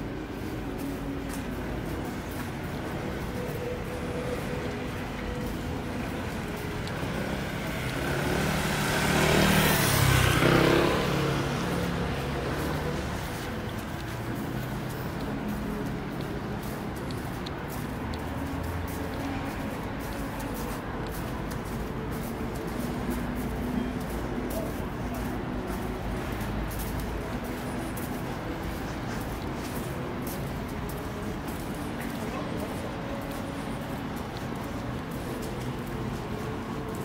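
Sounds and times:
distant traffic hum: 0.0s - 37.0s
faint music: 0.0s - 37.0s
footsteps on wet pavement: 0.0s - 37.0s
scooter engine passing: 3.0s - 16.2s.

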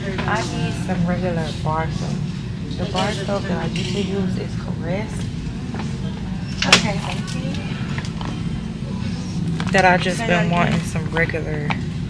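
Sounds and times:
store background hum: 0.0s - 12.0s.

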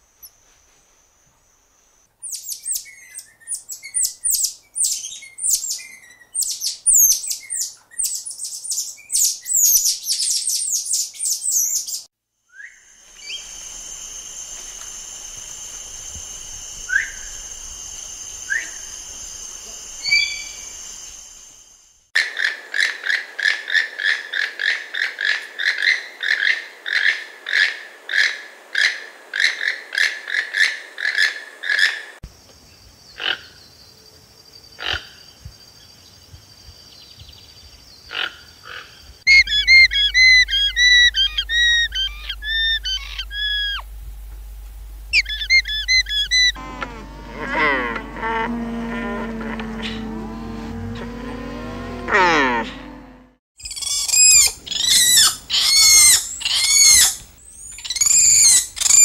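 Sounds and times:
toucan calling: 20.0s - 20.8s, 39.3s - 44.3s, 45.0s - 47.0s, 53.6s - 59.0s
monkey high-pitched calls: 38.1s - 43.9s, 45.1s - 46.6s, 53.6s - 59.0s
high-pitched background drone: 39.3s - 53.4s
tapir short rising squeaks: 45.1s - 48.3s.

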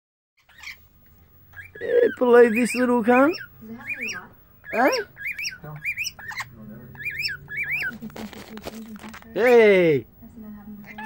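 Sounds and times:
lorikeet screeching: 0.4s - 8.0s.

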